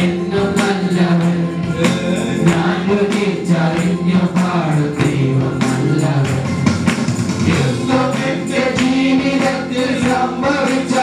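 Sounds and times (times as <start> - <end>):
men singing through microphones: 0.0 - 6.8, 7.4 - 11.0
electronic keyboard: 0.0 - 11.0
percussion beat: 0.0 - 11.0.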